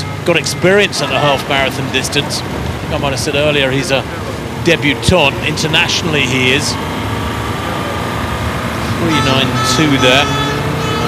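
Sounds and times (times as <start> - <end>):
road noise: 0.0 - 11.0
vehicle engine running: 0.0 - 11.0.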